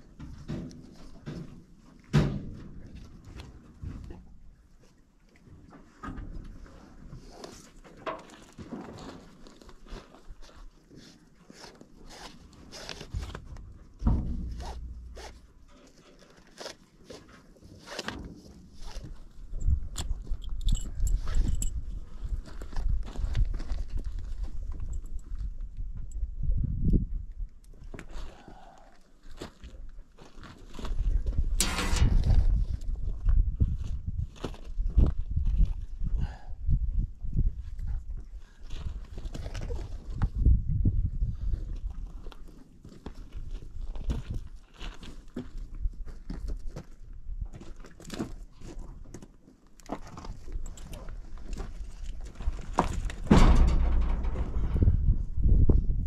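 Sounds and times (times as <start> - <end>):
tack creaking and rattling: 12.3 - 17.3, 31.5 - 33.0, 49.8 - 55.3
heavy low rumble: 31.6 - 33.2, 53.3 - 56.0.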